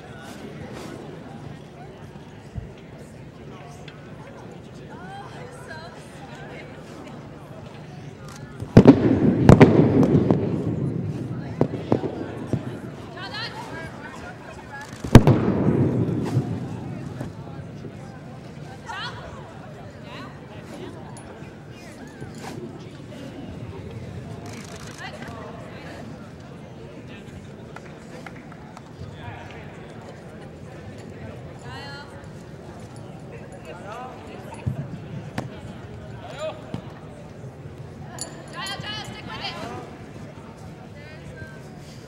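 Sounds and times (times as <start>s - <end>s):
murmur of distant voices: 0.0s - 42.0s.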